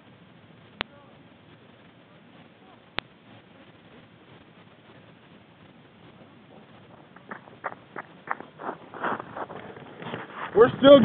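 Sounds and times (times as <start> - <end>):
footsteps crunching through snow: 6.2 - 11.0.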